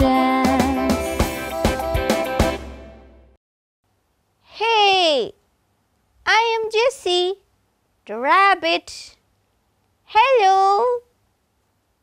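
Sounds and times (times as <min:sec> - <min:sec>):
instrumental children's song music: 0:00.0 - 0:03.3.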